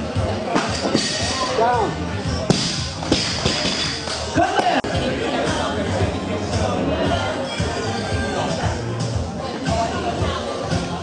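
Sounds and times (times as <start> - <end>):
voices in a large hall: 0.0 - 11.0.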